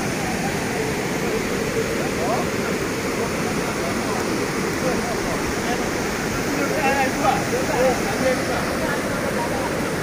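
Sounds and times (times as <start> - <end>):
rushing churning water: 0.0 - 10.0.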